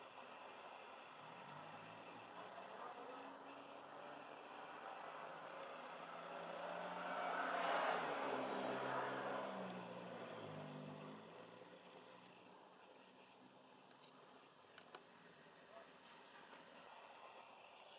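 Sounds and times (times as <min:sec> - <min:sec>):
vehicle passing by: 0:01.2 - 0:12.3.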